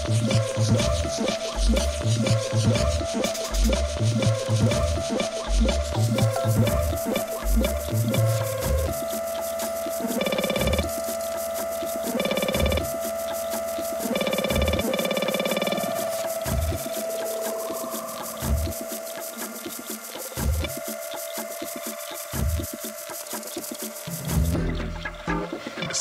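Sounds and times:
held synth tone: 6.2 - 22.8.

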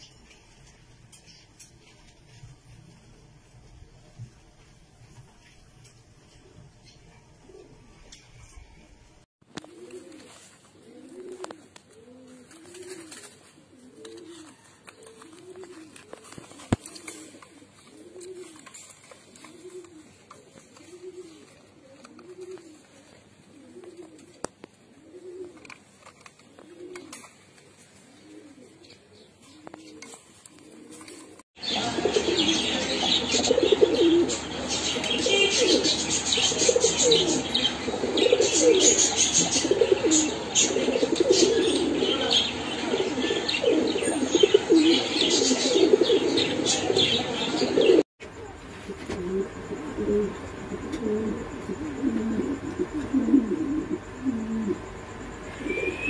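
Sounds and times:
pigeons cooing: 6.3 - 8.7, 9.5 - 56.0.

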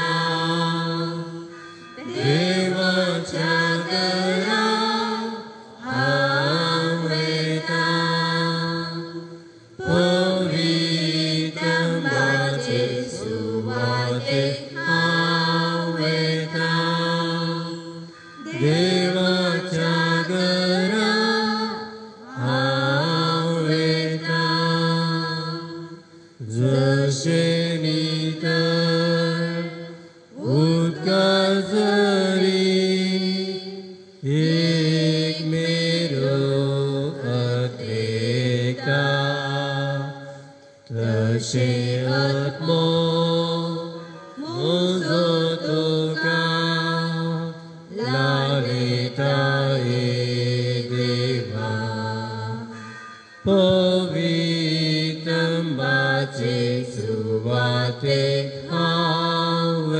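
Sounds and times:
hymn singing: 0.0 - 59.9.

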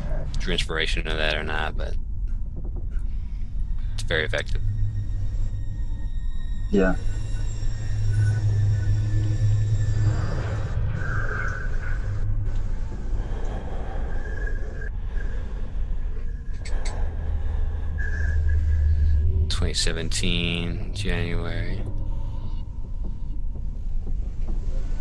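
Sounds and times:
low steady rumble: 0.0 - 25.0.

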